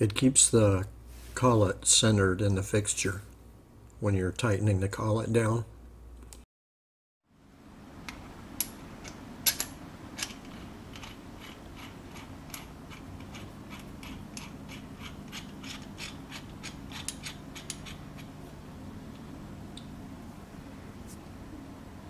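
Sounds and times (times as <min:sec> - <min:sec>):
steady low hum: 0:07.3 - 0:22.0.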